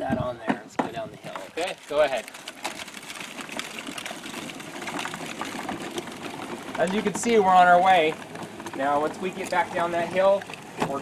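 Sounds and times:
toy wheels rolling over dirt: 0.1 - 11.0.

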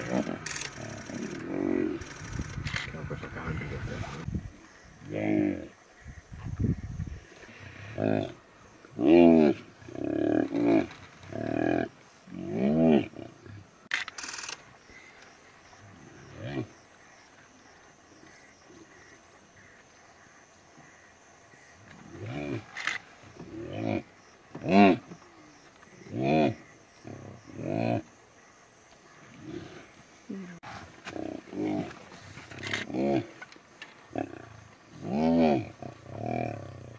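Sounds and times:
drawn-out animal calls: 0.0 - 6.2.

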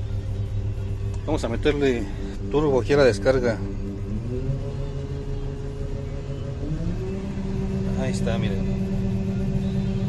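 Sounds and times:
combine engine inside cab: 0.0 - 10.0.

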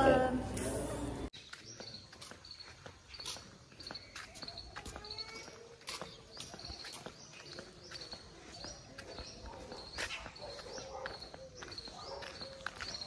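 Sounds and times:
footsteps on concrete: 1.3 - 13.0.

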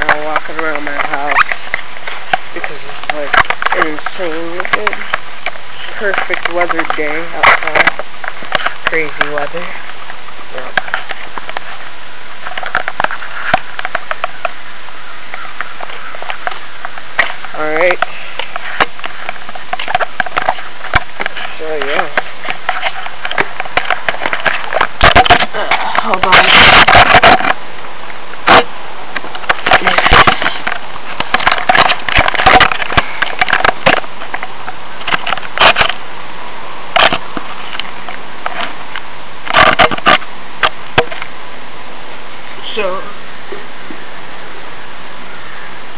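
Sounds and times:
microphone rubbing against fabric: 0.0 - 14.5, 15.9 - 27.7
steady hiss: 0.0 - 45.9.

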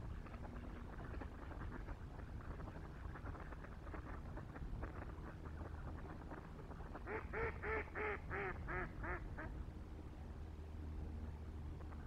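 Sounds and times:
distant waterfowl calls: 0.2 - 9.6
duck quacking: 7.0 - 9.5.

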